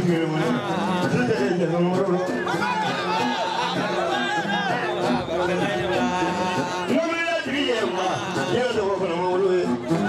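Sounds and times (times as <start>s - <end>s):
man calling out: 0.0s - 10.0s.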